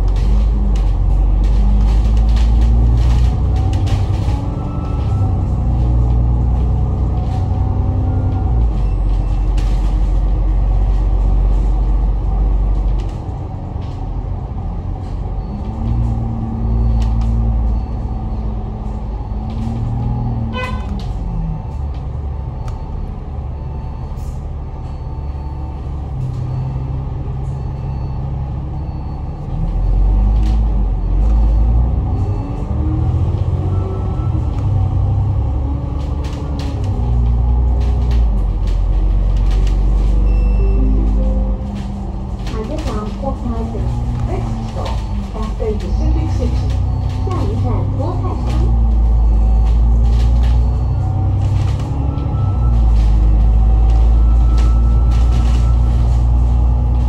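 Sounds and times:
bus engine and drivetrain: 0.0 - 57.0
brief beep: 40.2 - 41.8.

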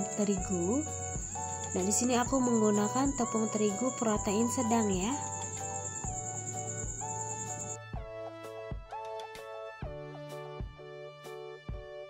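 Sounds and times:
background music with soft beat: 0.0 - 12.0.

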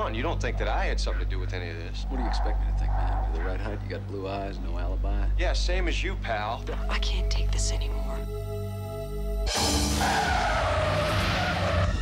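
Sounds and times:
car tyres squealing: 9.6 - 12.0.

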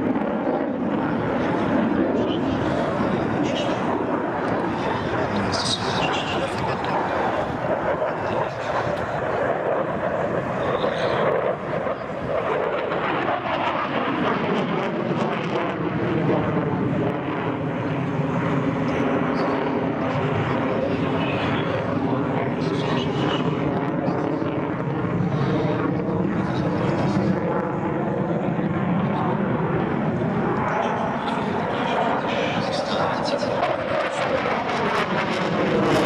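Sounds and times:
jet engines in afterburner: 0.0 - 36.0.

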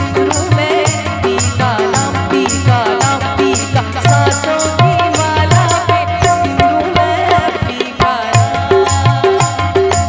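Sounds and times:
harmonium: 0.0 - 10.0
high percussion beat: 0.0 - 10.0
tabla: 0.0 - 10.0
woman singing: 0.0 - 10.0.

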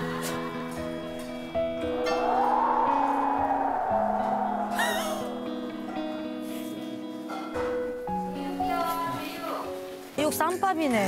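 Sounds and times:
hollow wind whoosh: 1.3 - 7.1
high warbling glide: 1.4 - 7.0
light background music: 5.9 - 11.0.

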